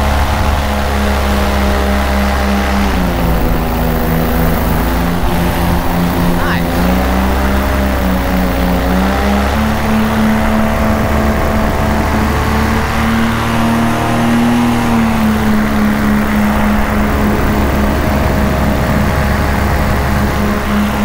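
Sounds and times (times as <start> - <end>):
paramotor engine and propeller: 0.0 - 21.0.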